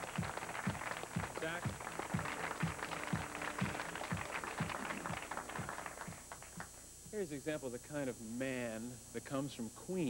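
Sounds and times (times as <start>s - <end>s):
studio audience applauding: 0.0s - 6.8s
music with steady low beat: 0.0s - 7.3s.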